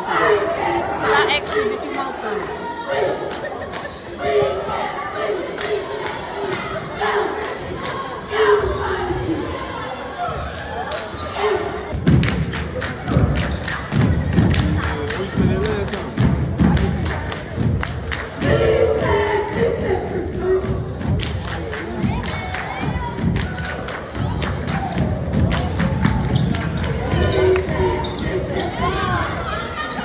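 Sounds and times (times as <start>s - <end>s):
voices chanting a cheer: 0.0s - 30.0s
people clapping: 3.2s - 4.3s, 5.3s - 8.2s, 12.0s - 18.9s, 20.6s - 29.0s.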